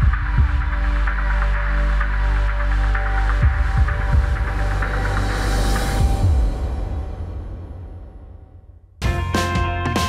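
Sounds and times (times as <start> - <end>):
deep bass drone: 0.0 - 9.8.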